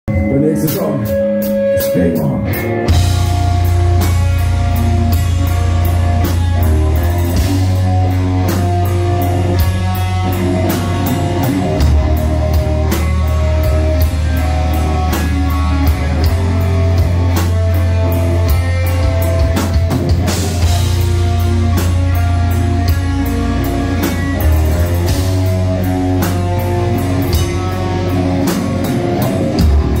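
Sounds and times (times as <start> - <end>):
bass guitar: 0.1 - 30.0
distorted electric guitar riffing: 0.1 - 30.0
rapid driving drums: 0.4 - 30.0.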